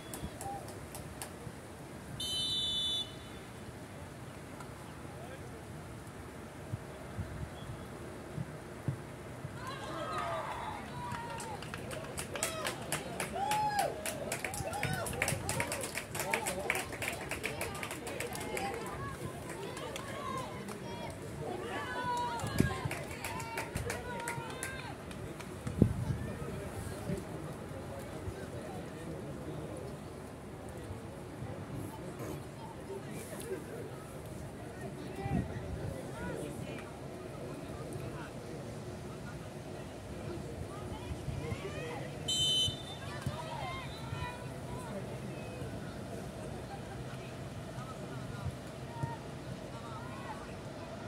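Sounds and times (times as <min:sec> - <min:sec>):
referee's whistle blast: 0:02.2 - 0:03.3, 0:42.3 - 0:43.1
people calling and shouting: 0:31.0 - 0:51.0.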